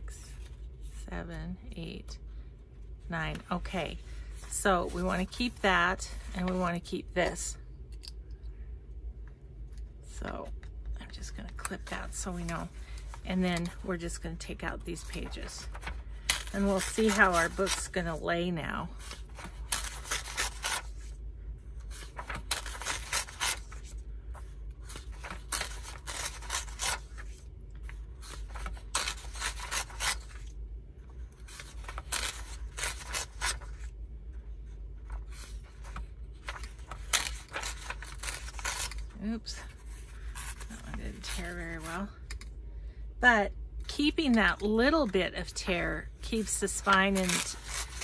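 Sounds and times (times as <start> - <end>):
paper rustling: 14.9 - 18.2, 21.8 - 30.5, 31.1 - 33.9, 34.6 - 42.0, 46.4 - 48.0
pages tearing: 19.0 - 21.1, 21.9 - 24.0, 24.8 - 27.4, 28.2 - 30.5, 31.4 - 33.9, 35.1 - 39.1, 46.8 - 48.0.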